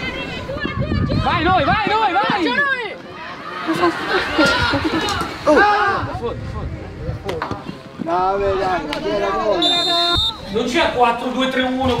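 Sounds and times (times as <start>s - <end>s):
players shouting: 0.0s - 6.2s
high whistle: 9.6s - 10.5s.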